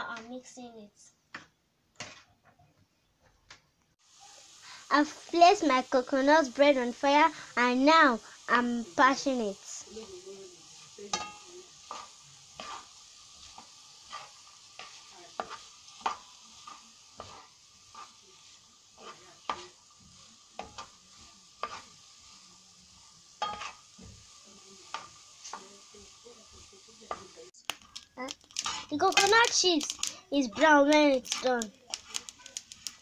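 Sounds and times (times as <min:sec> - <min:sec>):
wooden spoon scraping a pan: 0:02.0 - 0:02.6, 0:09.1 - 0:33.0
faint frying sizzle: 0:04.0 - 0:33.0.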